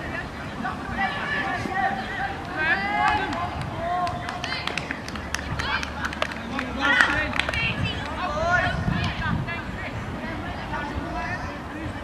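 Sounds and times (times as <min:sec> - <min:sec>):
voices talking and calling: 0:00.0 - 0:12.0
sharp claps: 0:02.4 - 0:08.2.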